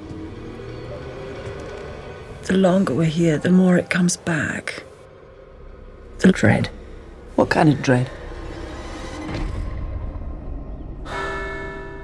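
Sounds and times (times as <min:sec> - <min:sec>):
low rumbling drone: 0:00.0 - 0:12.0
bell-like ringing tone: 0:11.0 - 0:12.0.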